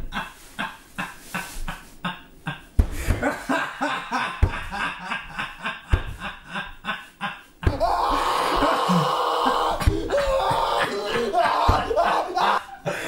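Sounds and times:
laughter in bursts: 0:00.0 - 0:07.7
man crying wail: 0:01.3 - 0:13.0.

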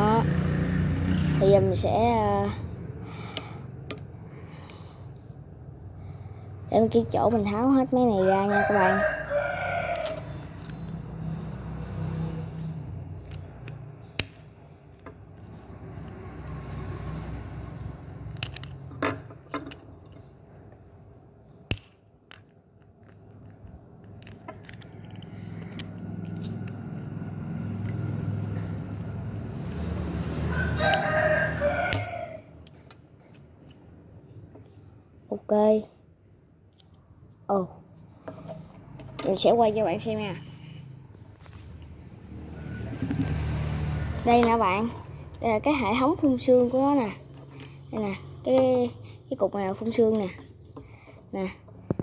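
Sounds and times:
rooster crowing: 0:08.4 - 0:10.4, 0:30.4 - 0:32.6, 0:42.5 - 0:43.4.

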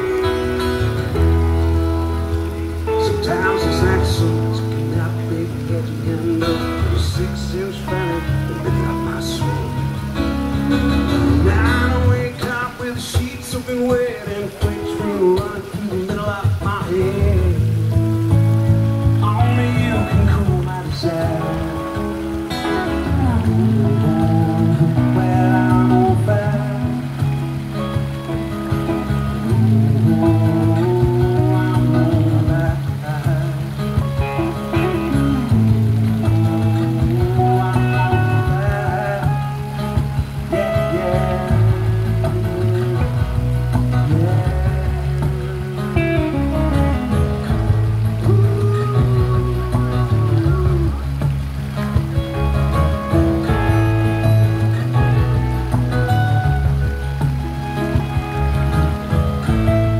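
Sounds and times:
man singing: 0:00.0 - 0:01.5, 0:02.7 - 0:27.7, 0:29.0 - 0:51.7
acoustic guitar: 0:00.0 - 0:59.9
fountain water splashing: 0:00.0 - 0:59.9.

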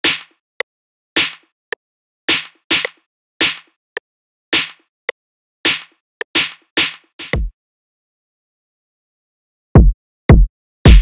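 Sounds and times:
sharp snare hits: 0:00.0 - 0:00.4, 0:01.2 - 0:01.5, 0:02.3 - 0:03.7, 0:04.6 - 0:04.8, 0:05.7 - 0:07.3.

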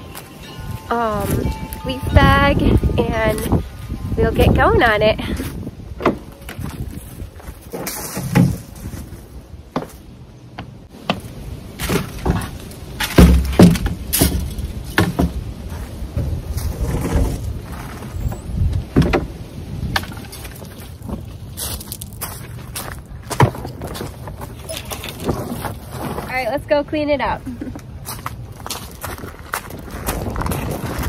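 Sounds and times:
footsteps on gravel: 0:00.0 - 0:12.7, 0:20.1 - 0:26.7, 0:27.3 - 0:31.0
knocks and thuds: 0:10.6 - 0:15.4, 0:18.9 - 0:19.3.

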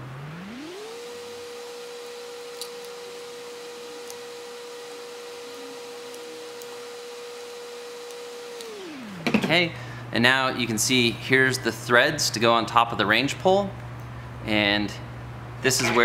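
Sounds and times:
hum gliding in pitch: 0:00.0 - 0:02.4, 0:03.5 - 0:07.3.

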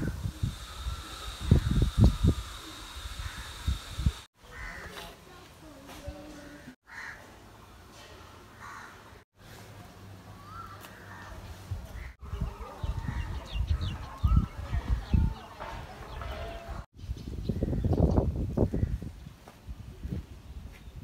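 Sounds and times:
crows cawing: 0:03.2 - 0:03.6, 0:04.5 - 0:05.0, 0:06.5 - 0:07.3, 0:08.6 - 0:09.0.

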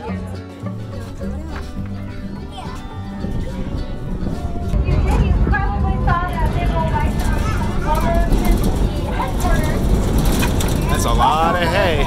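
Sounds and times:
low rumble of moving wagon: 0:00.6 - 0:12.0
wind noise on microphone: 0:00.8 - 0:12.0
people talking: 0:04.7 - 0:09.9, 0:10.7 - 0:12.0.

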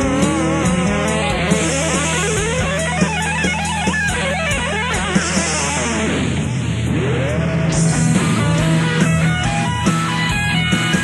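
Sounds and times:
punk metal band playing: 0:00.0 - 0:11.0.

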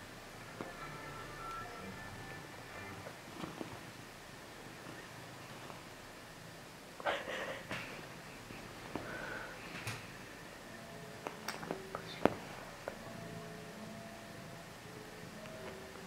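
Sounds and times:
duvet rustling: 0:00.0 - 0:16.0
faint steady tones: 0:00.0 - 0:16.0.

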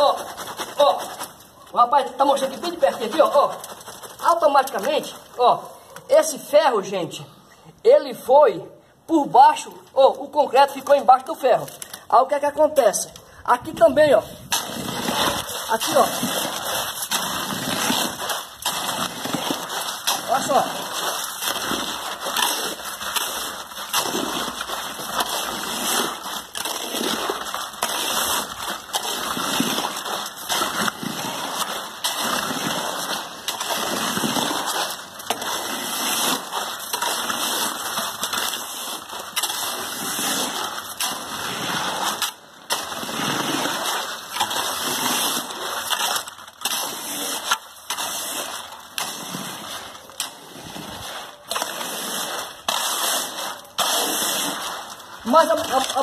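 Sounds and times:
wet concrete sloshing: 0:00.0 - 0:06.5, 0:12.8 - 0:56.0.

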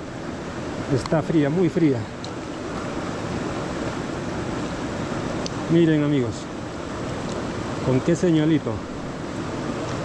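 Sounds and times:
river water rushing: 0:00.0 - 0:10.0.

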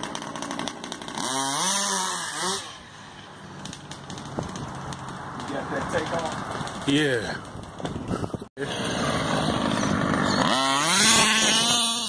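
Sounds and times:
small fuel engine running: 0:00.0 - 0:05.0, 0:08.6 - 0:12.0.

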